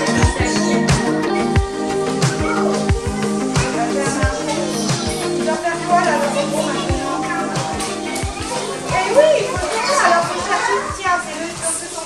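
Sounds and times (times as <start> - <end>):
young children chattering: 0.0 - 12.0.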